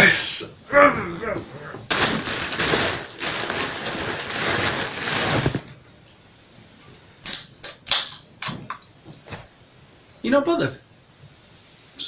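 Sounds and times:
plastic bag rustling: 1.8s - 5.8s.

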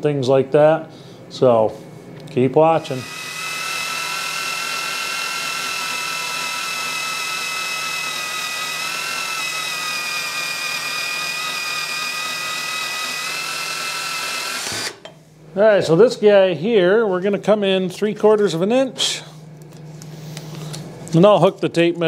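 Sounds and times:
power tool cutting steel tube: 2.8s - 15.1s.

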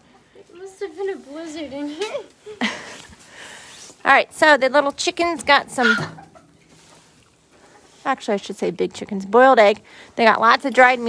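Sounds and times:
chickens clucking: 5.3s - 8.0s.

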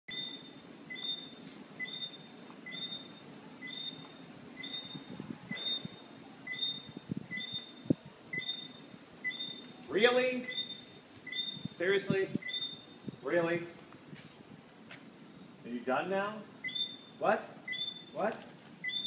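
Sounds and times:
bird calling: 0.1s - 11.7s, 12.3s - 13.0s, 16.6s - 18.2s.

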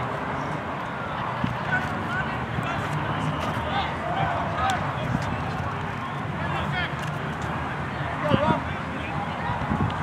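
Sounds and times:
distant people talking and calling: 0.0s - 10.0s
outdoor background din: 0.0s - 10.0s.

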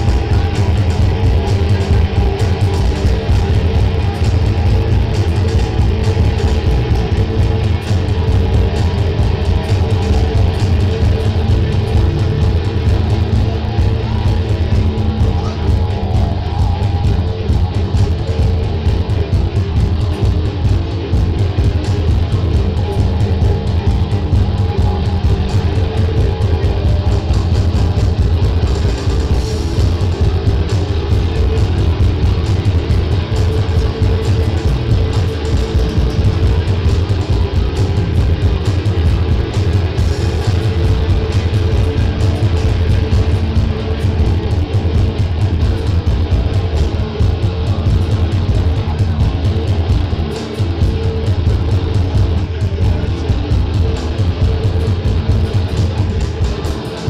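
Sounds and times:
drums: 0.0s - 57.0s
electric guitars: 0.0s - 57.0s.

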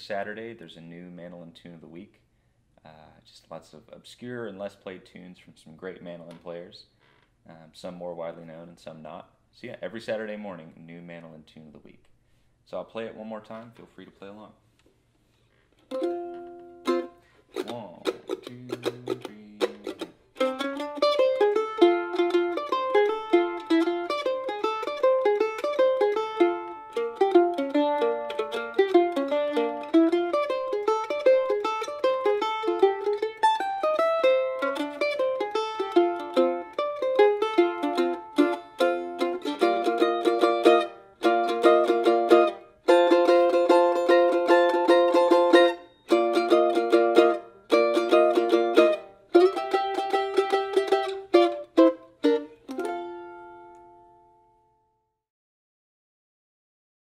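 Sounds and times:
mandolin playing bluegrass tune: 15.8s - 54.6s.

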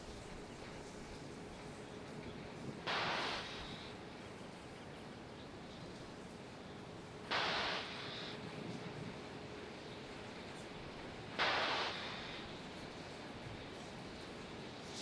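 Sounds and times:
faint steady hum: 0.0s - 15.0s
steady background hiss: 0.0s - 15.0s
pressure venting bursts: 2.9s - 3.9s, 7.3s - 8.6s, 10.6s - 13.1s.

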